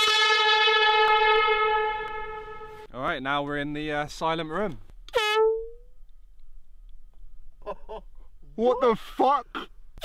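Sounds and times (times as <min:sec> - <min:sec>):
air horn blast: 0:00.0 - 0:02.9, 0:05.1 - 0:05.8.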